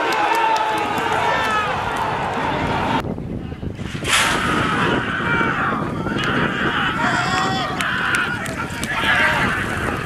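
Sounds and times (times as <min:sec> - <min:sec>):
people shouting: 0:04.5 - 0:10.0.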